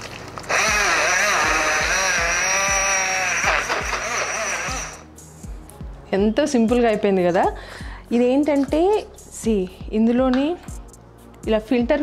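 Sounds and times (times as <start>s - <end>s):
blender motor whirring: 0.4s - 5.1s.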